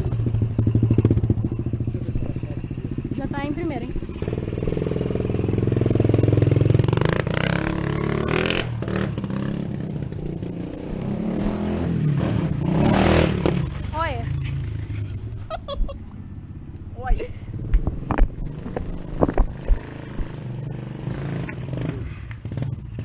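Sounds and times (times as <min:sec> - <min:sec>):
dirt bike engine revving: 0:00.0 - 0:15.4, 0:17.6 - 0:23.0.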